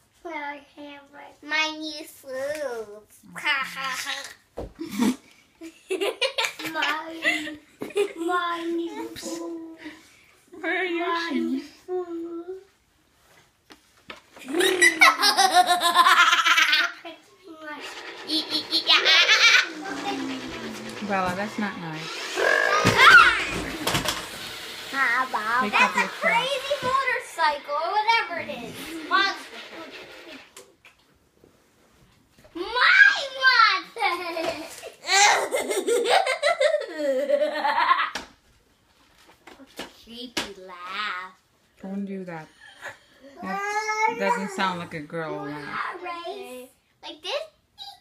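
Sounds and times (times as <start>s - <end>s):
girl's creepy cackling laugh: 14.4s - 16.9s.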